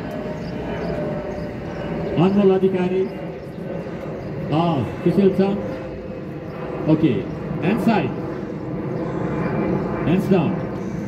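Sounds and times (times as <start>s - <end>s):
engine-like rumble: 0.0s - 11.0s.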